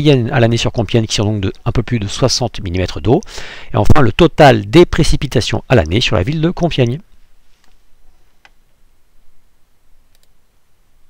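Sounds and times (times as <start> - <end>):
low background hiss: 0.0 - 11.0
computer mouse clicks: 10.1 - 10.4.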